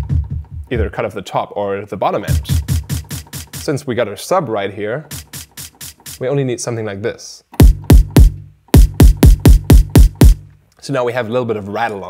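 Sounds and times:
synthesized kick drum hits: 0:00.0 - 0:00.9, 0:02.3 - 0:03.7, 0:05.1 - 0:06.2, 0:07.6 - 0:10.5.

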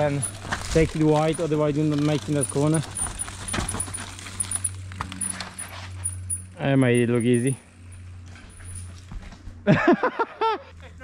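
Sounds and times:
mountain bike rattling on trail: 0:00.0 - 0:09.7.

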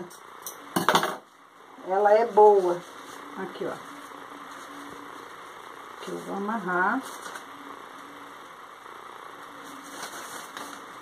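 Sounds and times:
steady background hum: 0:00.0 - 0:11.0
crepe paper rustling: 0:02.5 - 0:08.1, 0:09.4 - 0:11.0.

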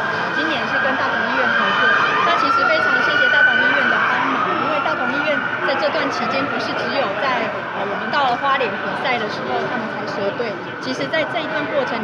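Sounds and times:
crowd chatter: 0:00.0 - 0:12.0
emergency vehicle siren wailing: 0:00.0 - 0:12.0.

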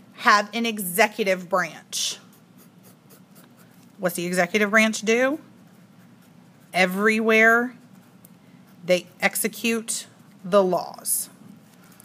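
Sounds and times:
pen scratching on paper: 0:05.0 - 0:10.8.

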